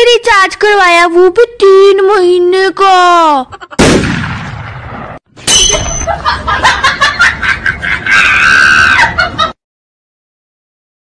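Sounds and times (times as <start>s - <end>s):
loud gunshot-like blast: 3.8s - 5.2s.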